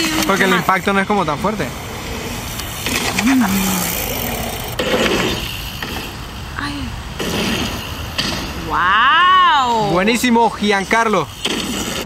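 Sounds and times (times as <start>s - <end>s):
bike tyres on dirt trail: 0.0s - 12.0s.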